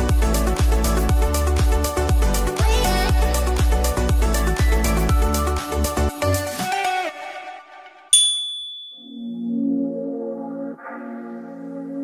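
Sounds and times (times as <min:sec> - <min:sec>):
high chime: 0:08.2 - 0:09.5.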